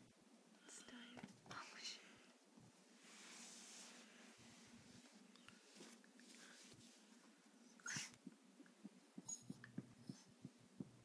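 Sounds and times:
faint steady hum: 0.0 - 11.0
dog whining: 9.2 - 10.2.

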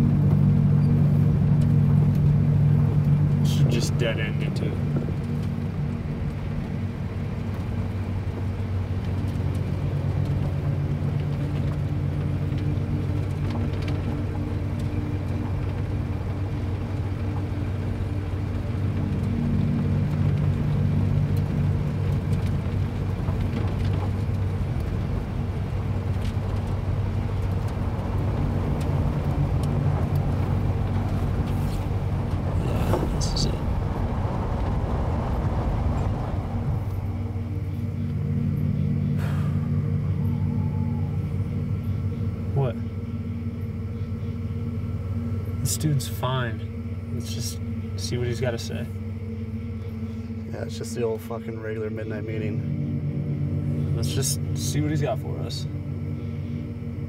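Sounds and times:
truck engine droning: 0.0 - 57.0.

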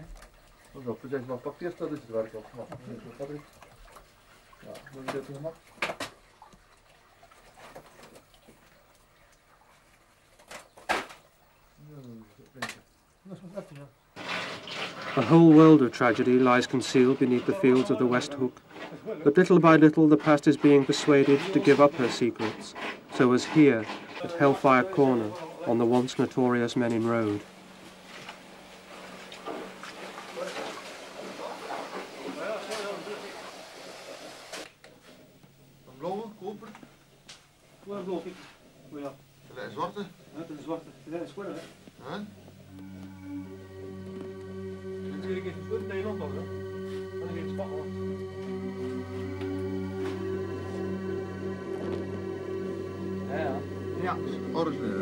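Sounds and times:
low steady hum: 25.1 - 32.0, 39.1 - 55.0
indistinct voices talking: 42.3 - 55.0.

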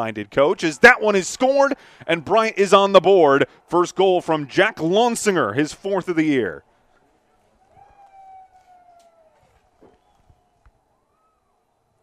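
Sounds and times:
distant siren wailing: 7.7 - 11.7.

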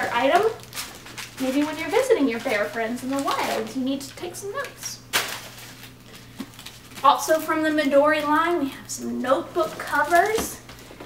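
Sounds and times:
packaging rustling: 0.0 - 8.4, 9.4 - 11.0.

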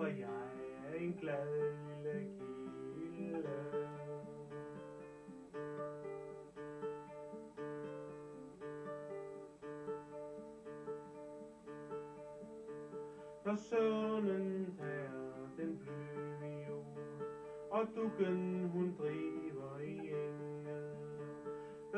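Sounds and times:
classical guitar fingerpicked chords: 0.0 - 21.9.

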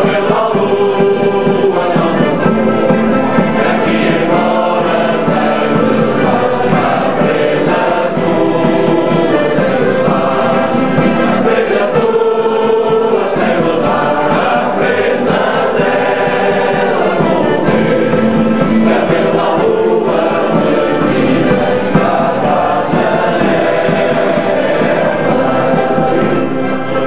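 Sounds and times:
men's choir singing: 0.0 - 27.0
plucked acoustic guitars: 0.0 - 27.0.

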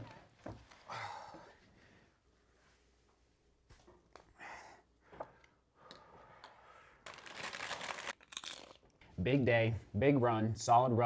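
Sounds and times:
plastic snack bag crinkling: 7.0 - 9.0.

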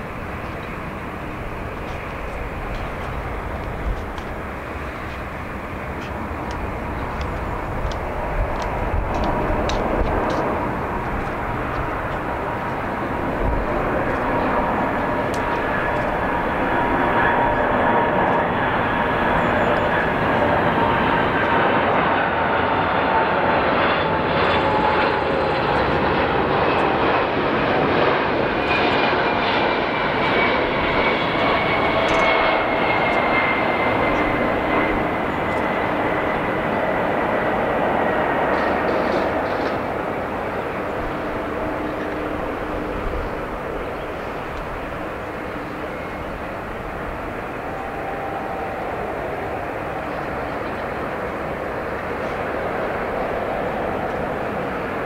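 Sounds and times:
jet engine roar with whine: 0.0 - 55.0.

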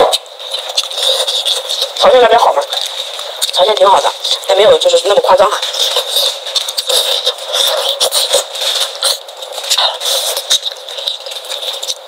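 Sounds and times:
person biting and chewing: 0.0 - 4.5, 5.6 - 12.0.

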